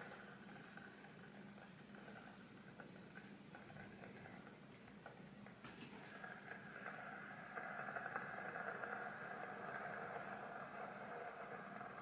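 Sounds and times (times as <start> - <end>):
kettle crackling hiss: 0.0 - 12.0.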